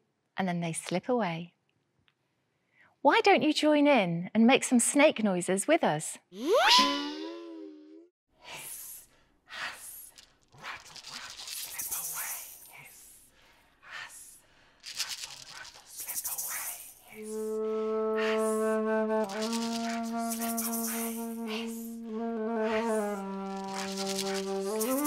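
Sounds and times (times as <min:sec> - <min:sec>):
hand shaker rattles: 0:09.7 - 0:13.2, 0:14.8 - 0:17.5, 0:19.2 - 0:22.0, 0:22.7 - 0:25.0
low woodwind note held: 0:17.2 - 0:25.0.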